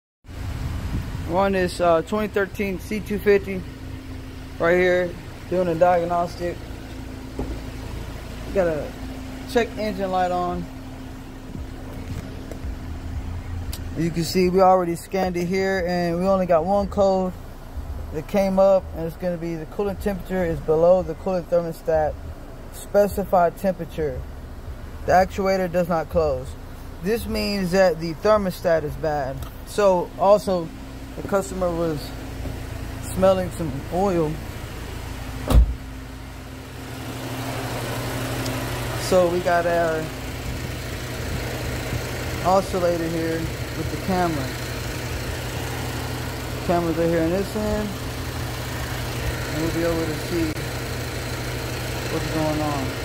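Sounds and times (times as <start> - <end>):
car engine idling: 0.3 - 53.0.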